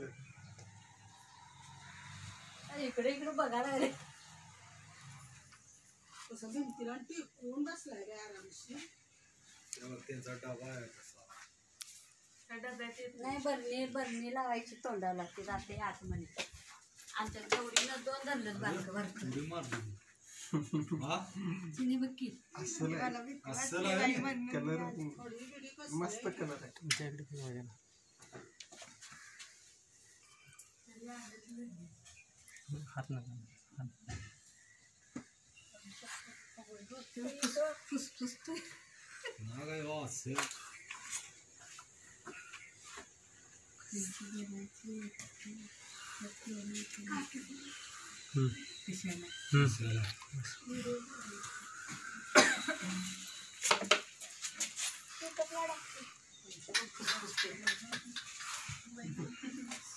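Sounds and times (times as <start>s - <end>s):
people talking: 43.9s - 47.8s, 55.2s - 58.3s, 58.9s - 59.9s.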